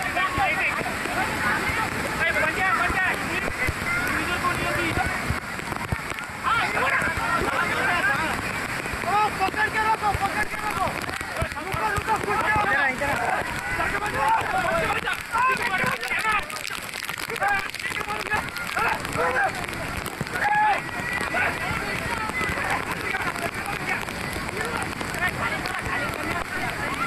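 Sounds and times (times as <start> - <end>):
fast-flowing stream rushing: 0.0 - 27.0
people shouting and crying out: 0.0 - 27.0.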